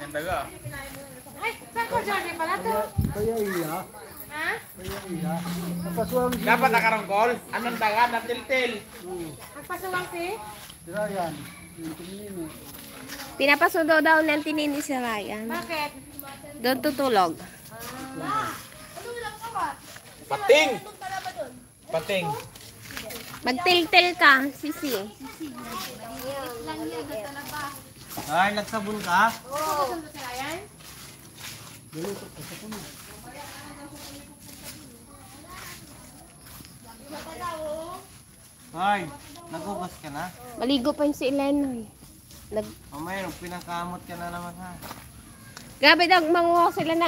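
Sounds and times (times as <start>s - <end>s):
background voices talking: 0.0s - 28.2s.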